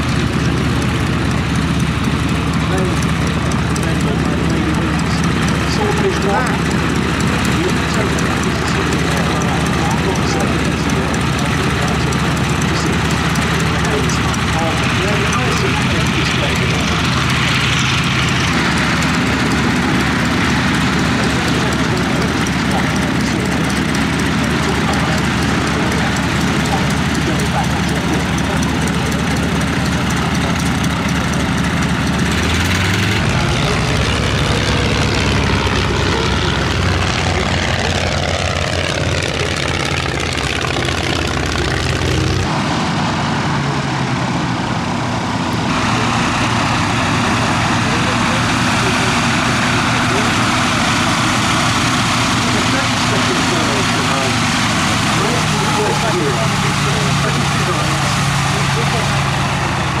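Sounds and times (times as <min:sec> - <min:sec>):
radial engine running at low power: 0:00.0 - 1:00.0.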